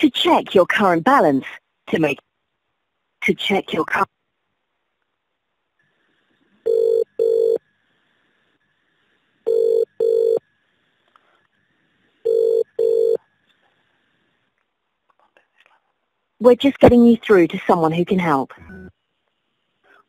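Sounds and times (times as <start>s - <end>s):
telephone ringing tone: 6.6s - 7.6s, 9.5s - 10.4s, 12.2s - 13.2s.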